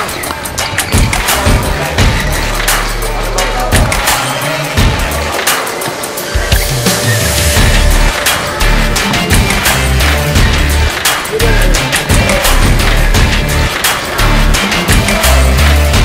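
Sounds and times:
music with beat and deep bass: 0:00.0 - 0:16.0.

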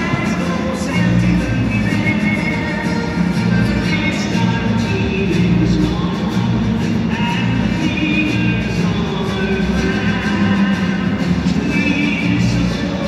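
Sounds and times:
crowd singing along: 0:00.0 - 0:13.0
music over stadium sound system: 0:00.0 - 0:13.0.

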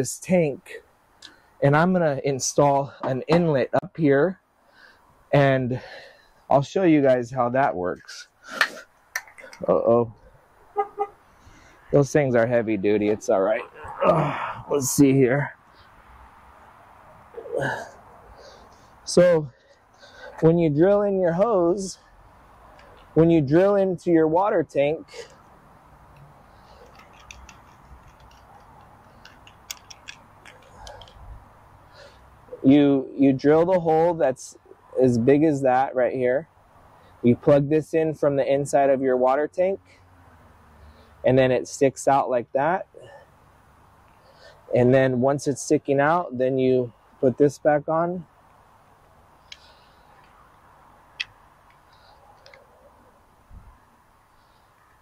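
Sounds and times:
plastic fittings clicking: 0:26.8 - 0:31.2.

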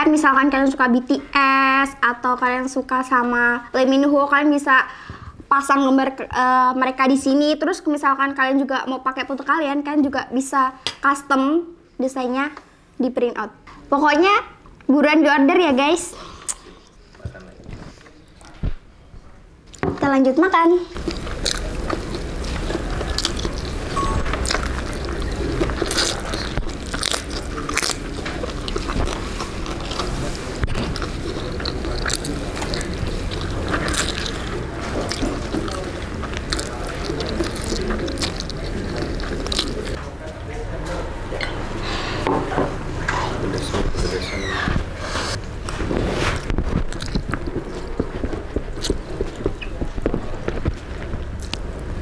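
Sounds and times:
chewing: 0:21.0 - 0:40.0, 0:46.4 - 0:52.0
noodles slurped: 0:21.0 - 0:40.0.

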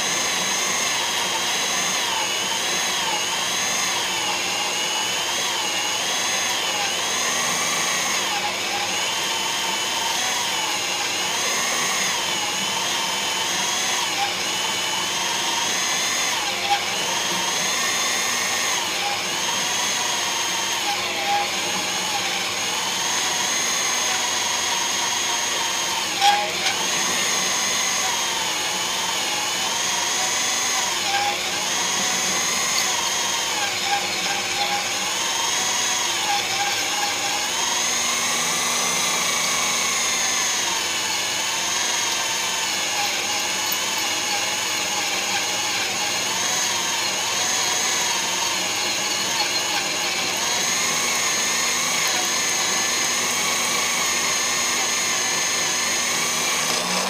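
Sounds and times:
cutter drilling through steel: 0:00.0 - 0:57.0
drill motor whining: 0:00.0 - 0:57.0.

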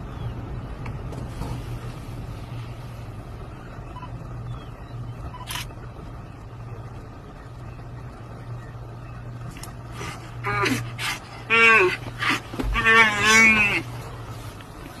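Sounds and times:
vehicle engine idling: 0:00.0 - 0:15.0.

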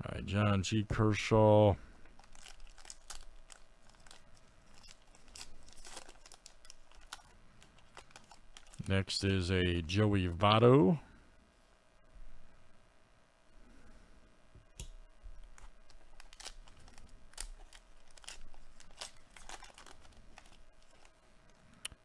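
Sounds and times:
plastic wrapper crinkling: 0:02.0 - 0:09.1, 0:15.4 - 0:21.6.

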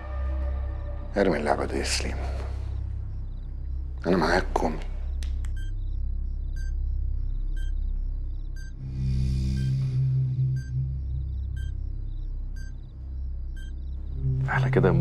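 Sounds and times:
low rumbling drone score: 0:00.0 - 0:15.0
short electronic beeps: 0:11.6 - 0:11.8, 0:13.6 - 0:13.8.

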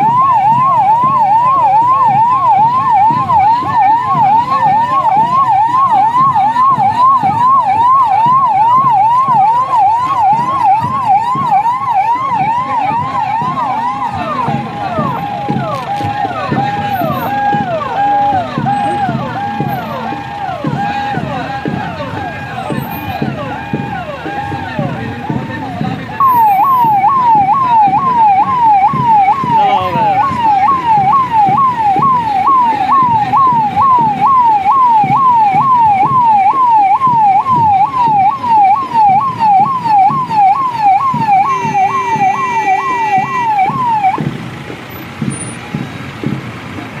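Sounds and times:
loud fast siren yelp: 0:00.0 - 0:44.3
police sirens wailing: 0:00.0 - 0:47.0
steady horn-like tone: 0:41.3 - 0:44.0.

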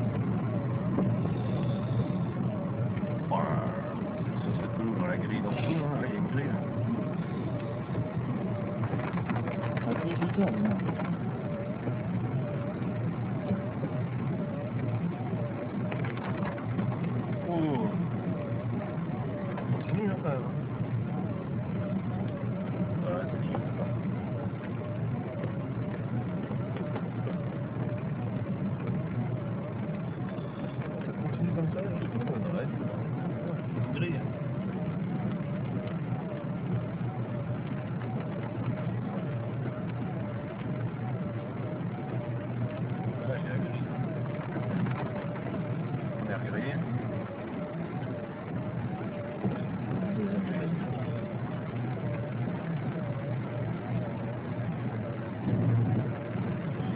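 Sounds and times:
faint wavering tone: 0:00.0 - 0:08.5
car engine and road rumble: 0:00.0 - 0:56.9.

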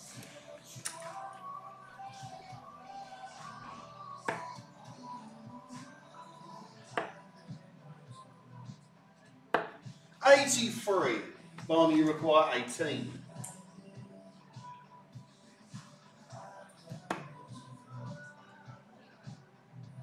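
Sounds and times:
faint background music: 0:00.0 - 0:20.0
darts hitting dartboard: 0:09.6 - 0:09.8, 0:17.1 - 0:17.3.

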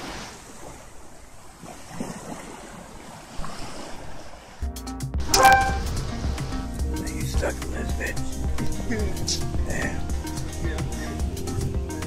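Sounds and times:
small waves washing on beach: 0:00.0 - 0:04.6
music with bass line: 0:04.7 - 0:07.2, 0:08.3 - 0:12.0.

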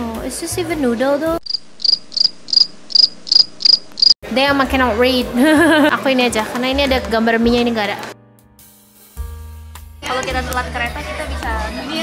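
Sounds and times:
crickets chirping: 0:01.4 - 0:04.2.

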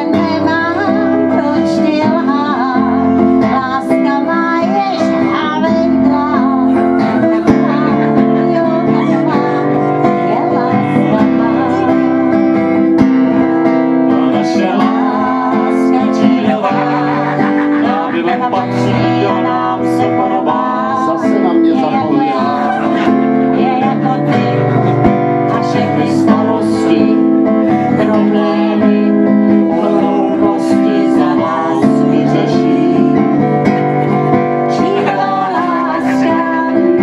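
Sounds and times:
acoustic guitar strumming: 0:00.0 - 0:37.0
woman and man singing: 0:00.0 - 0:37.0.

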